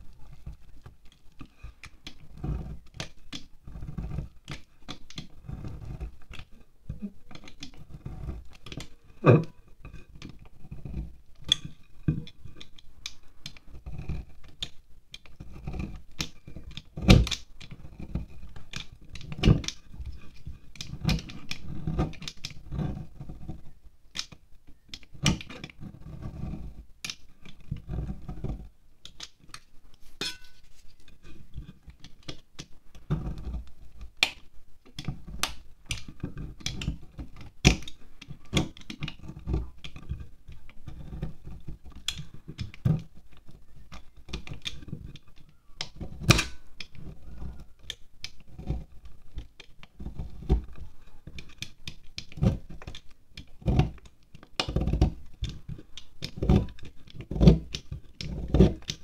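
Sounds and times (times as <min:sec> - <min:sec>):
knife scraping wax candle: 0:00.3 - 0:24.3, 0:25.0 - 0:28.7, 0:33.0 - 0:34.0, 0:35.0 - 0:53.0.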